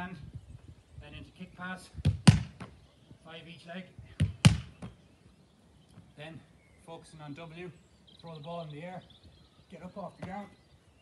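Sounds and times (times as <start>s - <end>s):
ball hitting wall: 2.0s - 2.7s, 4.2s - 5.0s
boot kicking ball: 2.0s - 2.7s, 4.2s - 5.0s.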